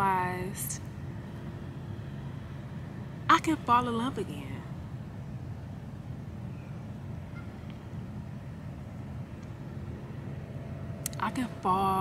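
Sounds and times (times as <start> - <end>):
faint steady hum: 0.0 - 12.0
steady low rumble: 0.0 - 12.0.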